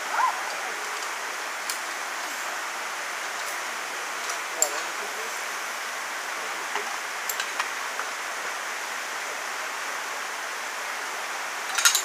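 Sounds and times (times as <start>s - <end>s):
rainforest background hiss: 0.0s - 12.0s.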